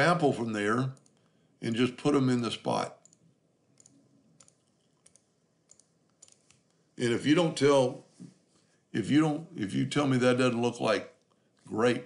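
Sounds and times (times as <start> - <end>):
computer mouse clicks: 3.0 - 6.8.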